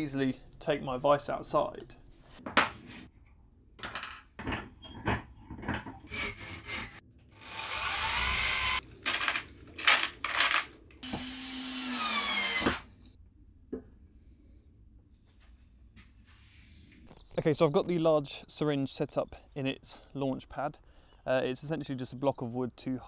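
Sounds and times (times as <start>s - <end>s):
wooden pieces knocking and clattering: 3.8s - 6.0s, 8.9s - 11.0s
power drill boring into wood: 7.4s - 8.8s, 11.0s - 12.9s.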